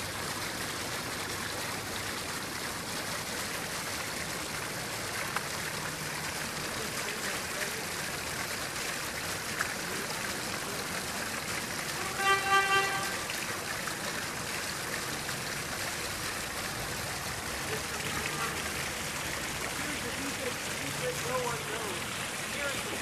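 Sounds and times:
vehicle horn toot: 0:12.0 - 0:13.2, 0:17.8 - 0:18.6.

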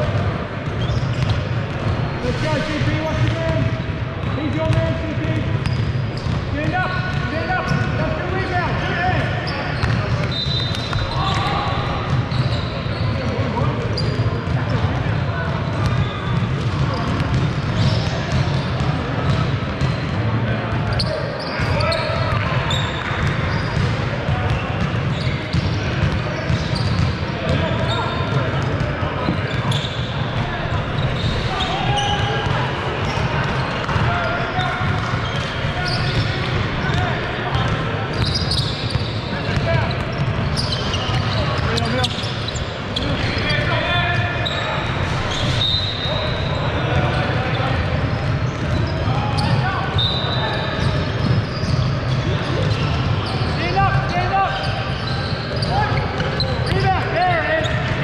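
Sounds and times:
players calling out: 0:01.8 - 0:15.0, 0:20.7 - 0:58.0.

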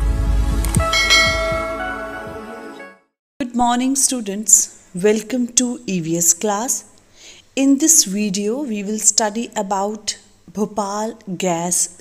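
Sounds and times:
deep sustained bass: 0:00.0 - 0:02.3
bell-like chime tones: 0:00.8 - 0:02.4.

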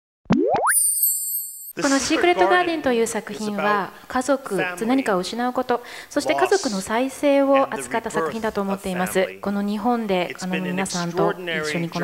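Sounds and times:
person speaking: 0:01.8 - 0:03.9, 0:06.2 - 0:12.0.

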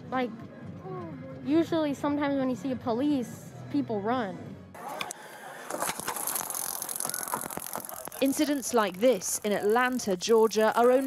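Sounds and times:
sharp ticks: 0:06.3 - 0:11.0.

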